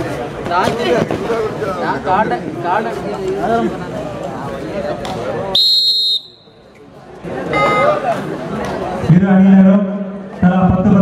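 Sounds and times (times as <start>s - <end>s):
crowd chatter: 0.0s - 11.0s
referee's whistle blast: 5.6s - 6.6s.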